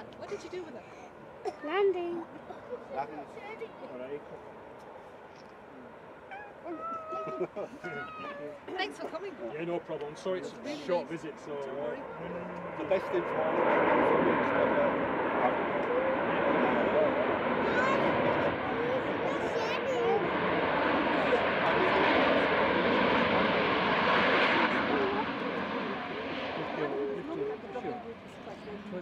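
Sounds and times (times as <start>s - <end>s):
jet engines running loud: 10.6s - 29.0s.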